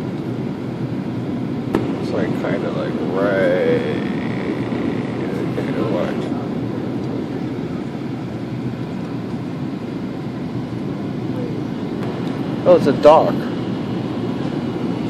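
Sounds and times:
airliner cabin roar: 0:00.0 - 0:15.0.

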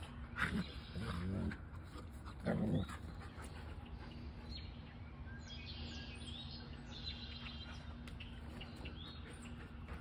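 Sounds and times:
dogs growling: 0:00.0 - 0:03.6.

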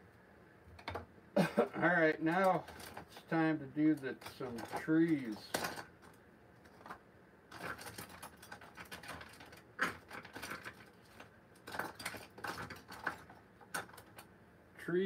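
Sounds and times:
painting tools clattering: 0:02.2 - 0:06.1.

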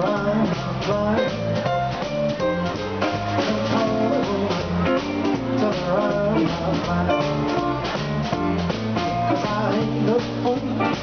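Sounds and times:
drum kit swing beat: 0:00.0 - 0:11.0
electric bass notes: 0:00.0 - 0:11.0
electric guitar: 0:00.0 - 0:11.0.

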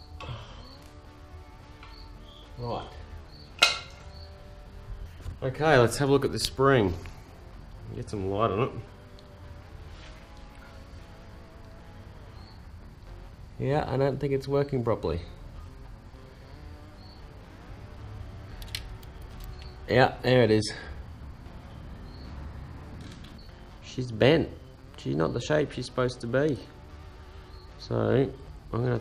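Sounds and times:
faint room tone hum: 0:00.0 - 0:29.0
metal tool clanking: 0:03.6 - 0:04.0.

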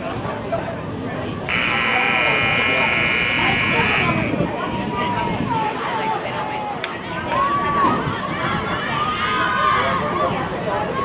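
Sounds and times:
crowd chatter: 0:00.0 - 0:11.0
electric horn blast: 0:01.5 - 0:04.3.

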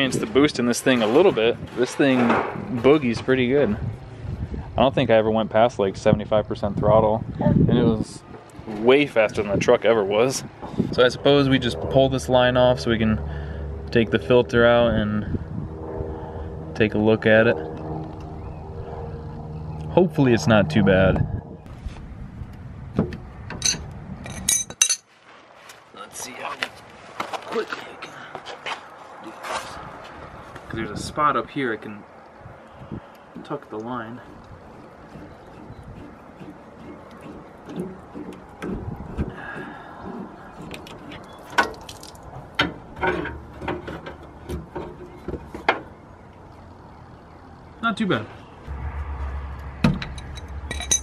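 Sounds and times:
low rumble: 0:02.5 - 0:24.6, 0:48.4 - 0:51.0
fuel line fitting clicks and knocks: 0:33.2 - 0:45.9
wrench clinking on metal fitting: 0:50.1 - 0:51.0.

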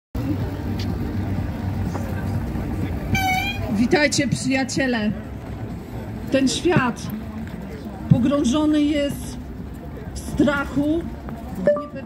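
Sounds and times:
passers-by voices: 0:00.2 - 0:12.0
traffic rumble: 0:00.2 - 0:12.0
short high horn toot: 0:03.1 - 0:03.8.

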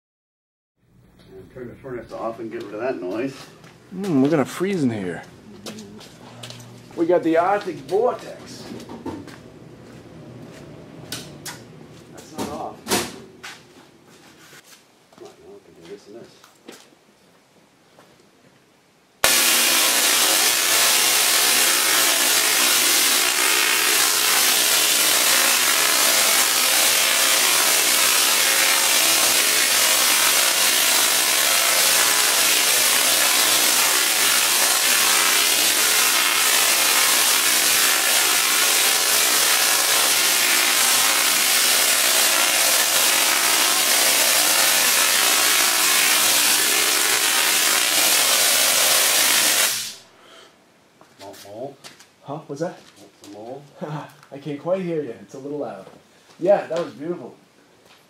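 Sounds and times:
tesla coil buzzing crackle: 0:19.2 - 0:50.0.

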